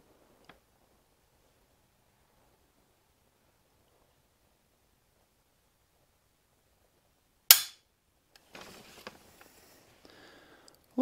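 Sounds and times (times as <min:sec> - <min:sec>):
faint handling rustle: 0:08.4 - 0:10.4.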